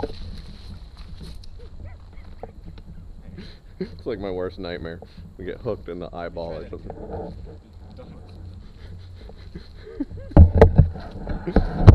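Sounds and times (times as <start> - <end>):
knocks and thumps of camera handling: 10.2 - 11.0.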